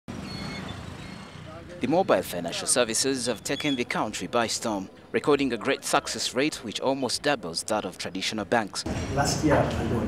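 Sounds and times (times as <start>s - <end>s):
street traffic hum: 0.1s - 10.0s.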